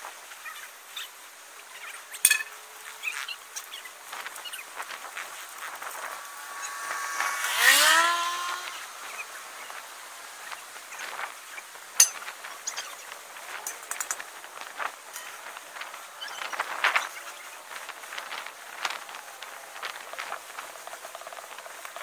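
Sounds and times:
vehicle passing by: 0:05.8 - 0:09.8.

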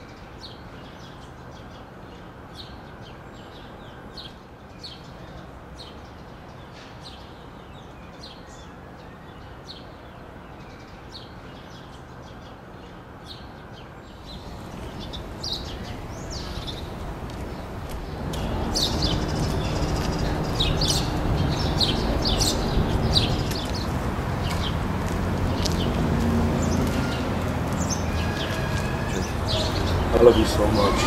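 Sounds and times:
small birds chirping: 0:00.0 - 0:31.0
traffic rumble: 0:11.2 - 0:31.0
low engine hum: 0:14.5 - 0:31.0.

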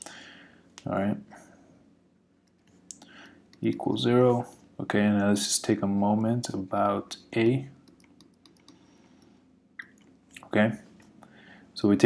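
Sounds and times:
stylus clicking on pen tablet: 0:07.8 - 0:09.3.

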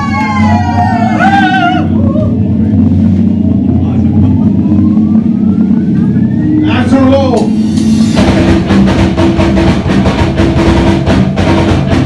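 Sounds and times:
distorted electric guitar drone: 0:00.0 - 0:12.0.

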